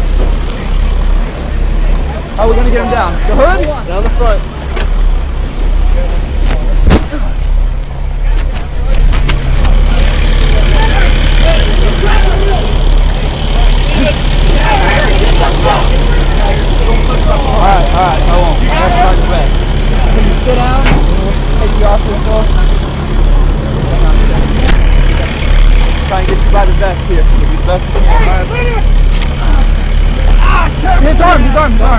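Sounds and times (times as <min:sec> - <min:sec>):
heavy vehicle engine droning: 0:00.0 - 0:31.9
indistinct voices: 0:00.0 - 0:31.9.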